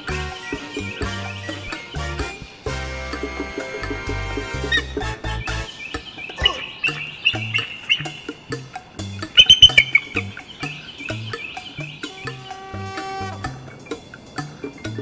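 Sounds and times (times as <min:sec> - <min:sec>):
background music with bass line: 0:00.0 - 0:15.0
eagle chittering calls: 0:00.0 - 0:15.0.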